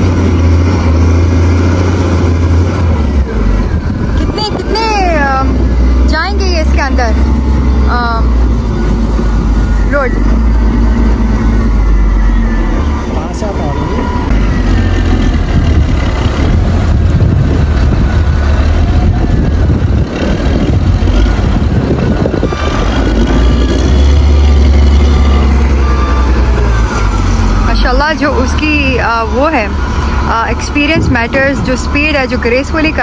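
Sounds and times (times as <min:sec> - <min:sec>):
diesel engine droning: 0:00.0 - 0:33.0
reversing alarm beeps: 0:08.7 - 0:15.3, 0:24.4 - 0:33.0.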